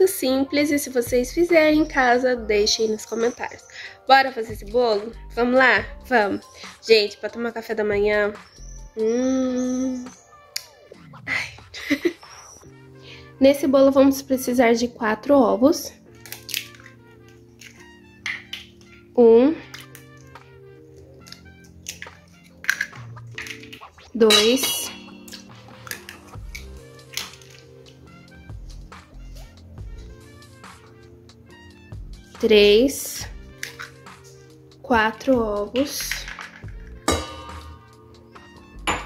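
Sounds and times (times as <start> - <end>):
soft background music: 0.0 - 39.0
egg shell cracking: 16.2 - 19.0, 19.6 - 20.4, 21.2 - 24.0, 24.9 - 28.1, 33.5 - 34.1, 35.9 - 36.8
bowl clinking on steel bowl: 24.3 - 26.2, 36.3 - 37.9.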